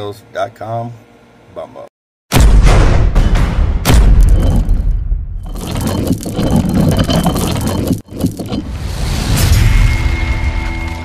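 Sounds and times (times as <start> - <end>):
mechanical scraping and clattering: 5.4 - 8.8.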